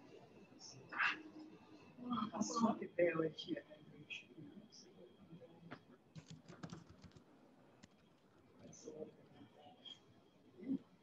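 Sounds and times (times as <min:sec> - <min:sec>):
computer keyboard typing: 0:06.1 - 0:07.2.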